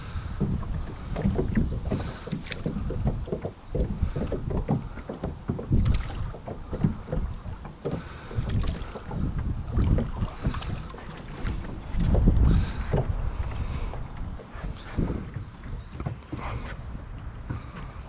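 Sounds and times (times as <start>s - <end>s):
oars knocking on boat hull: 0.0s - 18.0s
oars splashing in water: 0.0s - 18.0s
wind rumbling on microphone: 0.0s - 18.0s.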